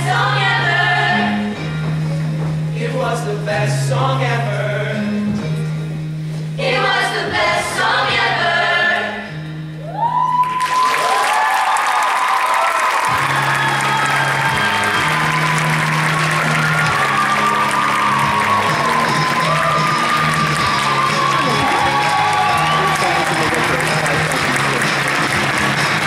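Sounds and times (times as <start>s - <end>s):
choir singing pop song: 0.0s - 1.6s, 6.6s - 9.4s
musical accompaniment: 0.0s - 26.0s
audience whooping and screaming: 9.8s - 26.0s
audience applause: 10.1s - 26.0s.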